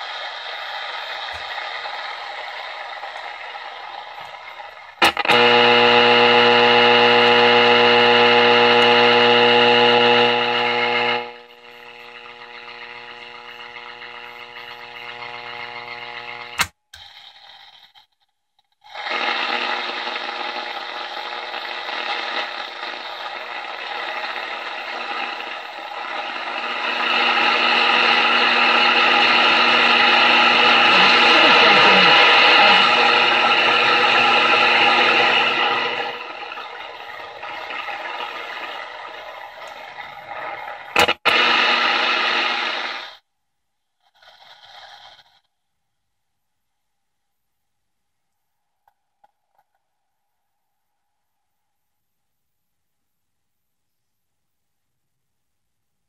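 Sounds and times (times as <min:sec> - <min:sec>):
radio buzzing tone: 0:00.0 - 0:16.7, 0:18.9 - 0:43.2
radio static hiss: 0:00.0 - 0:18.1, 0:18.8 - 0:43.3
click: 0:16.4 - 0:17.1.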